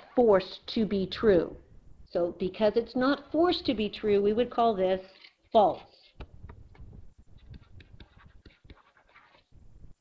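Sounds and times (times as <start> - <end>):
stylus scratching on tablet screen: 5.8 - 9.9.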